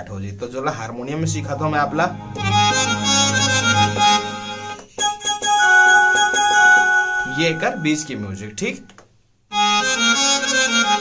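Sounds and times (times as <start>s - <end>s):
keyboard harmonium melody and chords: 1.2s - 8.9s, 9.5s - 11.0s.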